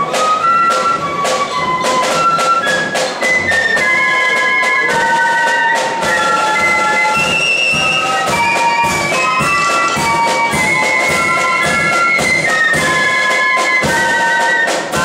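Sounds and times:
flutes playing high melody: 0.0s - 15.0s
sharp drum strokes: 0.0s - 15.0s.

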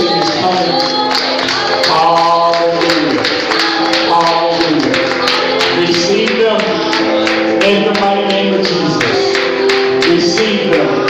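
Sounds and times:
gospel singing with music: 0.0s - 11.0s.

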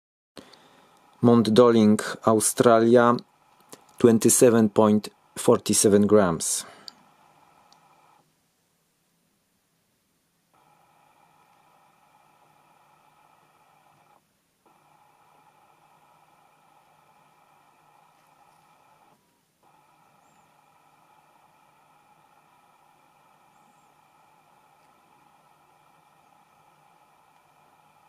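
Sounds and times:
faint steady hum: 0.4s - 28.0s.

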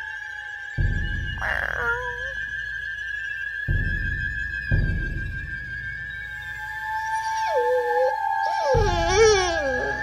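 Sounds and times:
eerie high-pitched music drone: 0.0s - 10.0s
dog howling: 6.8s - 10.0s.

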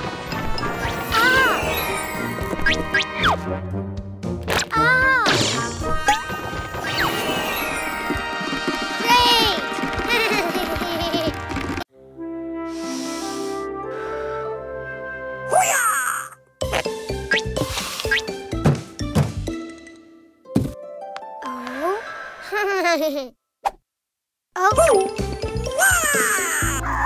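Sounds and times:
playful cartoon music: 0.0s - 22.0s, 24.6s - 27.0s.

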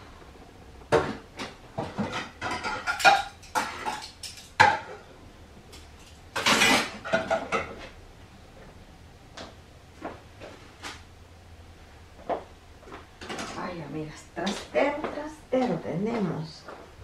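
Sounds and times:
dishes and pots clattering: 0.9s - 5.1s, 5.7s - 8.0s.

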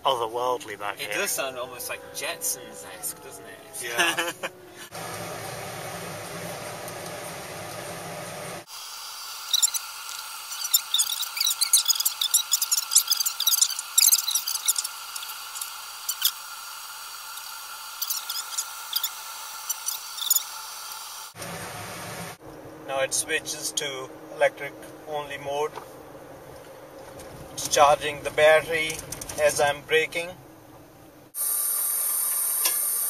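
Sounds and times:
foam fizzing and crackling: 8.6s - 21.4s.

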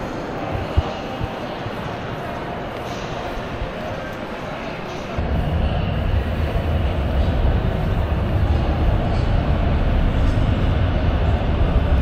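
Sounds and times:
metro train rumbling: 5.2s - 12.0s.

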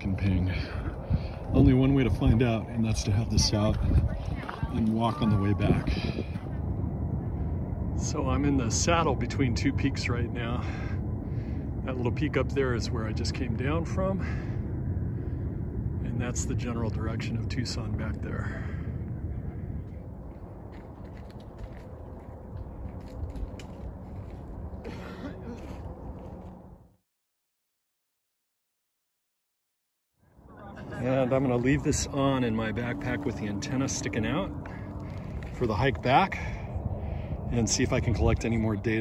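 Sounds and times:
wind buffeting microphone: 0.0s - 26.9s, 30.4s - 39.0s.

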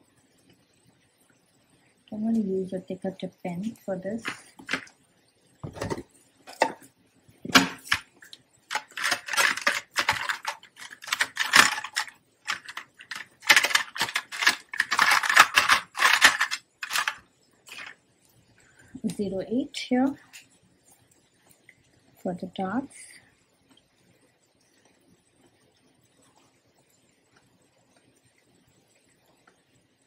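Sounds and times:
pens clicking and rattling: 4.2s - 4.9s, 7.5s - 8.0s, 8.7s - 18.0s.

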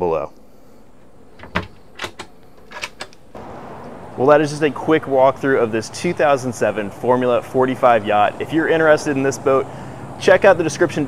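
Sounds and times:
outdoor air hiss: 0.0s - 11.0s
cabinet door and latch clicking: 1.4s - 3.2s.

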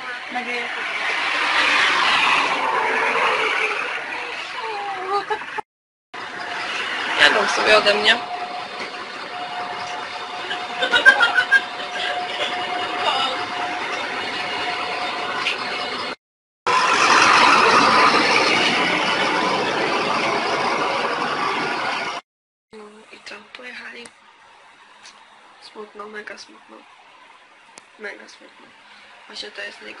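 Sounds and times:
bus engine whine: 0.0s - 5.6s, 6.2s - 22.2s, 22.8s - 30.0s
street noise: 0.0s - 5.6s, 6.2s - 30.0s
voices: 0.0s - 5.6s, 7.1s - 14.3s.

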